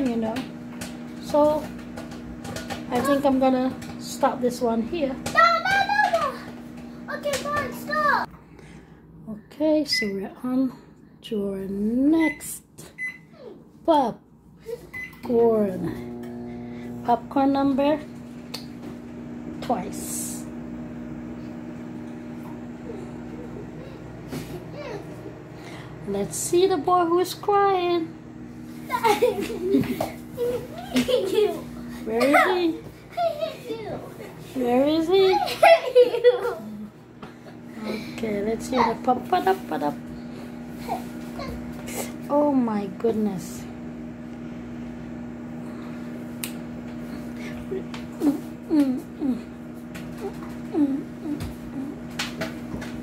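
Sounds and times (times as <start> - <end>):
microwave oven humming: 0.0 - 53.0
child laughing faintly: 22.8 - 25.3
low voices: 47.0 - 52.2.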